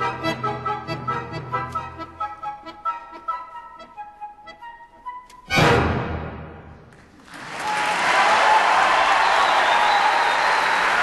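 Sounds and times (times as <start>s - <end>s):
accordion playing high notes: 0.0s - 6.0s
orchestra playing: 0.0s - 6.9s.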